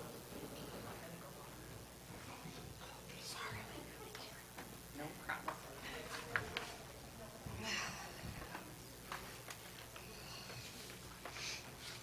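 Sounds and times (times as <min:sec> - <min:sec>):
faint indistinct voices: 0:00.0 - 0:12.0
soft whisper: 0:02.1 - 0:04.6, 0:05.2 - 0:12.0.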